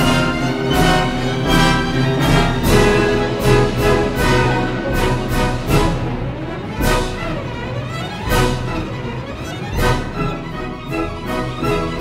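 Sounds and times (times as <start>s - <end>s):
symphony orchestra playing: 0.0s - 12.0s.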